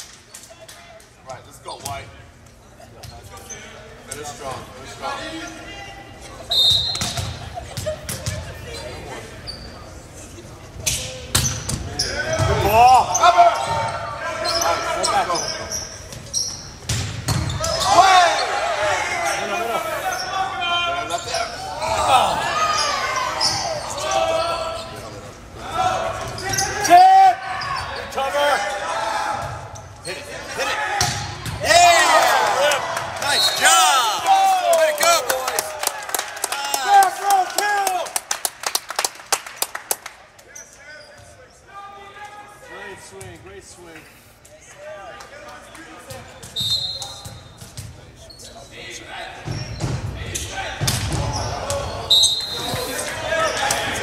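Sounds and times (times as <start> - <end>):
people shouting and yelling: 11.9 - 15.8, 17.5 - 25.0, 25.6 - 38.2
hand claps: 35.0 - 40.2.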